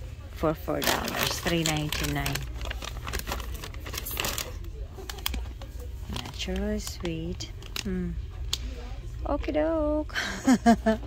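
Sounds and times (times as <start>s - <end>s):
plastic snack bag crinkling: 0.6s - 8.6s.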